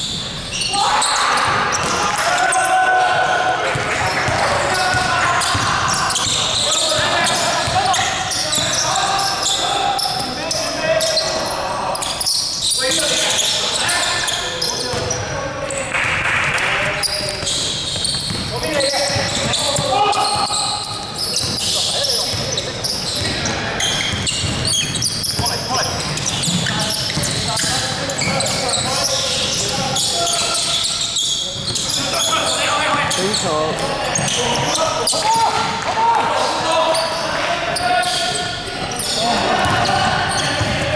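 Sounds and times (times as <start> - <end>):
players shouting: 0.6 - 12.2, 18.6 - 21.0, 31.8 - 40.9
basketball bouncing on wooden court: 3.7 - 8.8, 17.1 - 22.5, 23.1 - 28.6, 39.6 - 40.9.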